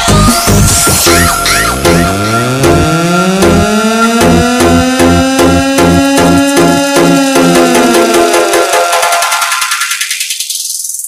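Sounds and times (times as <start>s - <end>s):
kick-drum beat: 0.0s - 9.0s
electronic dance music: 0.0s - 10.8s
rising filter sweep: 0.8s - 8.7s.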